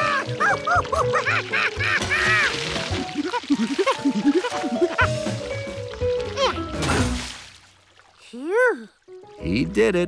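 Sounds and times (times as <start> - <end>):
background music: 0.0 - 7.6, 8.2 - 10.0.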